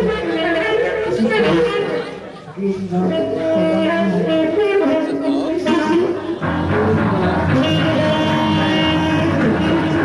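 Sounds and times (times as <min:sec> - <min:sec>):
held wind instrument note: 0:00.0 - 0:10.0
live band playing: 0:00.0 - 0:10.0
person singing with wavering pitch: 0:00.0 - 0:10.0.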